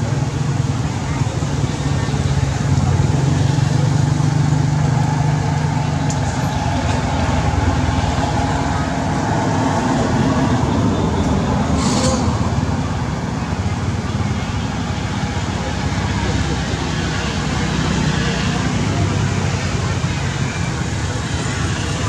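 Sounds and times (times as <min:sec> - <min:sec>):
motor vehicle engine rumble: 0:00.0 - 0:22.0.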